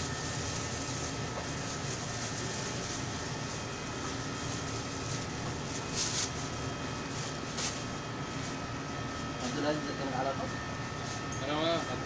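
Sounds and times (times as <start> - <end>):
machinery hum and hiss: 0.0 - 12.0.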